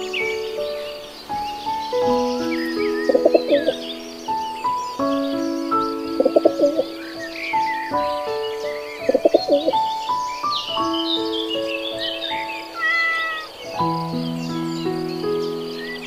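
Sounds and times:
background music: 0.0s - 16.0s
small birds chirping: 0.0s - 16.0s
pigeons cooing: 2.6s - 3.8s, 6.2s - 7.0s, 9.0s - 9.9s, 12.6s - 13.7s.

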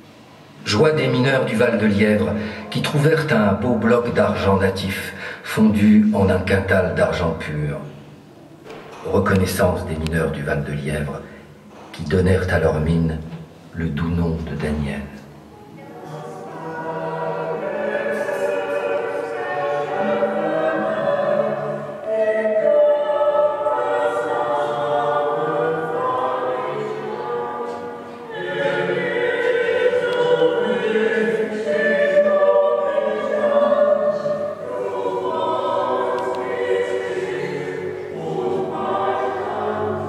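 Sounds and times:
choir singing: 15.5s - 40.0s.

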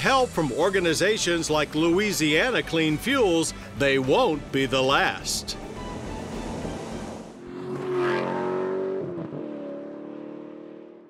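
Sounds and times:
vehicle engine revving: 5.2s - 11.0s.

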